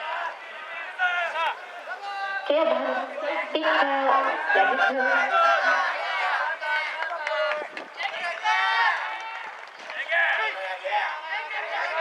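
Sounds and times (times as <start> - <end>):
people shouting and calling out: 0.0 - 9.4.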